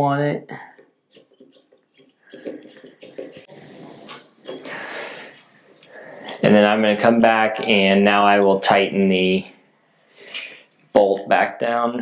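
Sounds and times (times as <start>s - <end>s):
metallic clicks and scraping: 1.1s - 11.4s.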